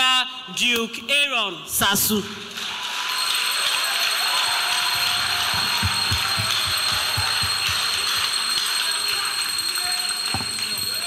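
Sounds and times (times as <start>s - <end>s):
audience applauding: 2.5s - 11.0s.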